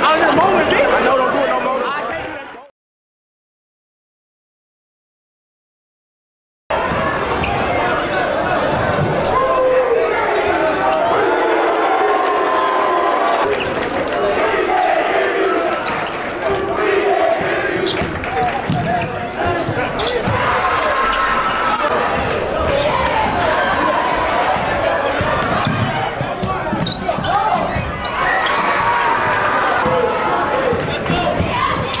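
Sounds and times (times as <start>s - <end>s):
crowd chatter and shouting: 0.0s - 2.7s, 6.7s - 32.0s.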